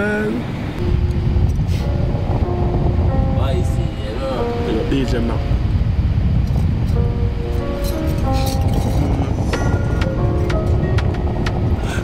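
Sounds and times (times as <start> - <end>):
car road rumble from inside: 5.7 - 12.0.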